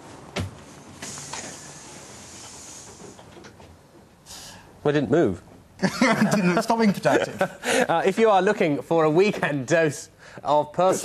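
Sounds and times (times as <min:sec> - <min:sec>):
bus door hissing: 0:00.9 - 0:03.5, 0:04.2 - 0:04.6.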